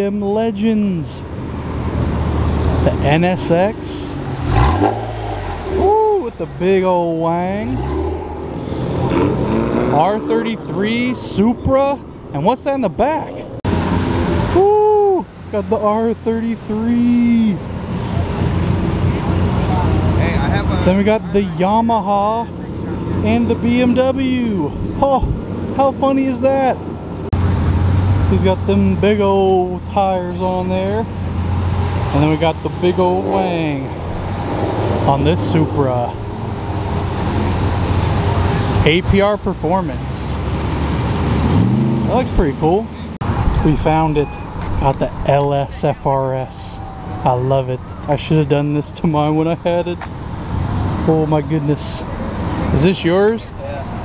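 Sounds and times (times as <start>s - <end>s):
outdoor noise: 0.0s - 54.0s
traffic noise: 0.0s - 54.0s
vehicle engine rumble: 0.0s - 54.0s.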